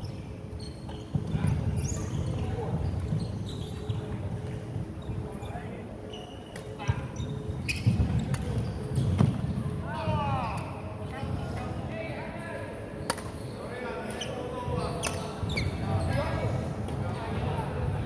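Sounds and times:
shoes squeaking on wooden floor: 0:00.0 - 0:09.4, 0:14.2 - 0:16.3.

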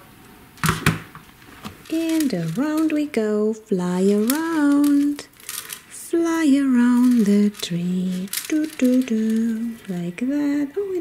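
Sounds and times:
plastic toys rustling clatter: 0:01.4 - 0:10.3.

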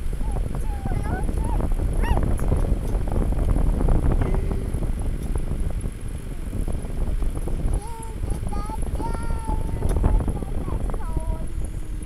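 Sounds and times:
vehicle engine and tyre rumble: 0:00.0 - 0:12.0.

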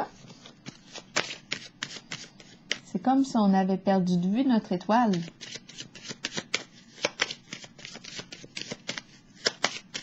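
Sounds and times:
cards being shuffled: 0:00.1 - 0:02.9, 0:05.1 - 0:10.0.

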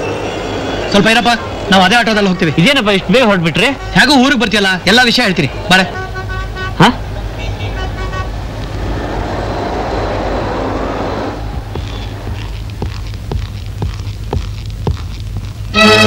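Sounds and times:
traffic din: 0:00.0 - 0:16.0
vehicle horn toots: 0:03.6 - 0:04.4, 0:05.8 - 0:08.4.

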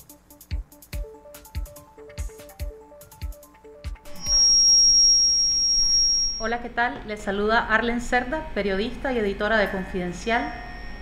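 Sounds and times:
high-pitched electronic tone: 0:04.0 - 0:06.7, 0:09.6 - 0:11.0.

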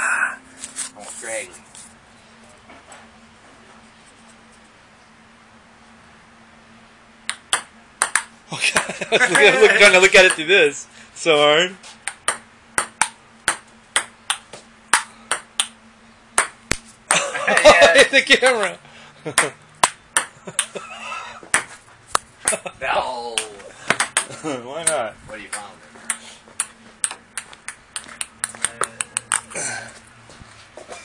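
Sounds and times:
table tennis ball hits: 0:07.3 - 0:08.9, 0:10.2 - 0:10.5, 0:12.0 - 0:15.8, 0:16.4 - 0:17.7, 0:19.3 - 0:20.7, 0:21.4 - 0:22.7, 0:23.3 - 0:29.5
person speaking: 0:09.2 - 0:11.7.

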